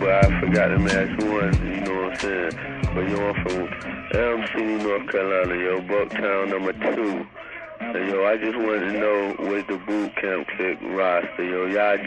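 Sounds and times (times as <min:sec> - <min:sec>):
person talking over telephone: 0:00.0 - 0:12.0
low drum thumps: 0:00.2 - 0:01.8, 0:04.2 - 0:04.4.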